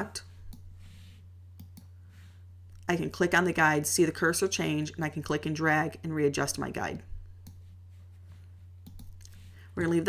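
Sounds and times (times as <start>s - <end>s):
low electrical hum: 0.0s - 10.0s
computer mouse clicks: 1.6s - 1.9s, 8.8s - 9.4s.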